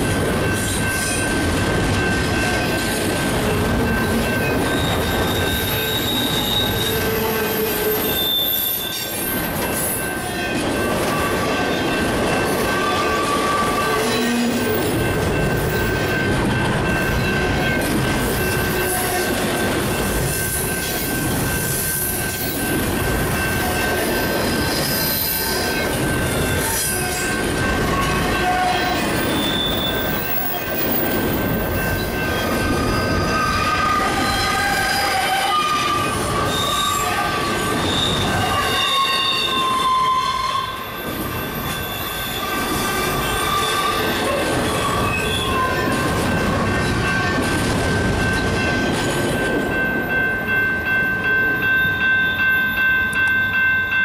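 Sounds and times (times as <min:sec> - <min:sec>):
steel wheels rumbling on rail: 0:00.0 - 0:54.0
wheel flanges squealing: 0:03.5 - 0:10.2, 0:24.5 - 0:47.2.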